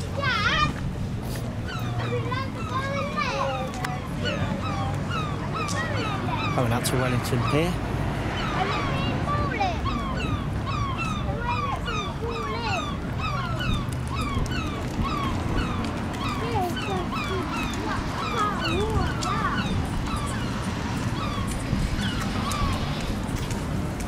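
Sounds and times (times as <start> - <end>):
flock of birds chirping: 0.0 - 24.0.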